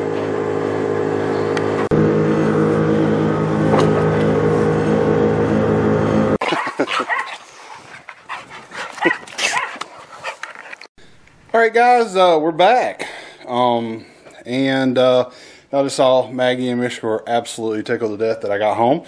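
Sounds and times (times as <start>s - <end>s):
dogs whining and barking: 6.4s - 10.9s.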